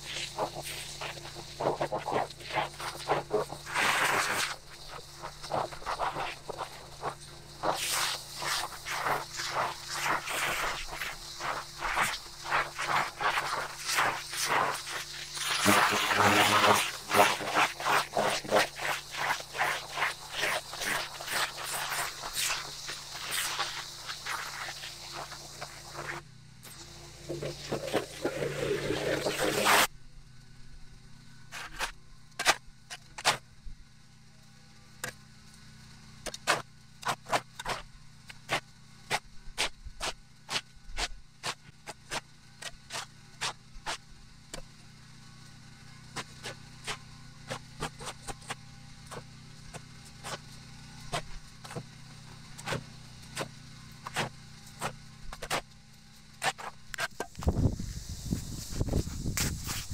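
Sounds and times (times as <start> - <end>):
shovel scraping dirt off concrete: 0.0 - 29.9, 31.5 - 33.4, 36.4 - 37.8, 38.5 - 44.0, 52.6 - 52.8, 53.4 - 55.6, 56.4 - 57.7, 58.3 - 59.9.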